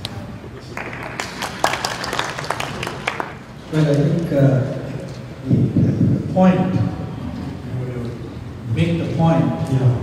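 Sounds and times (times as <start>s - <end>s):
people clapping: 0.6s - 3.5s.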